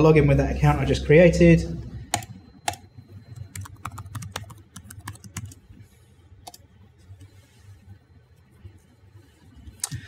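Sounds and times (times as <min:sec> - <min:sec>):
computer keyboard typing: 0:02.0 - 0:05.6.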